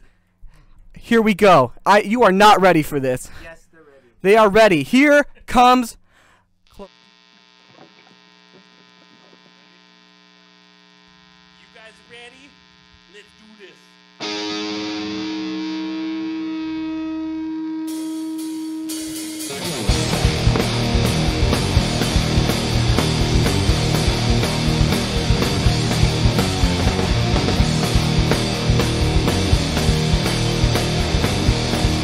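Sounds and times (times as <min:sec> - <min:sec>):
amplifier hum: 0:06.7 - 0:32.0
distorted electric guitar note: 0:11.4 - 0:32.0
pop-punk band playing: 0:14.2 - 0:32.0.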